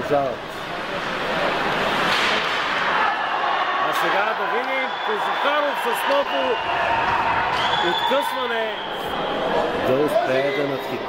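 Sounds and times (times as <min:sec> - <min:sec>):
rush of noise from ice rink: 0:00.4 - 0:03.7.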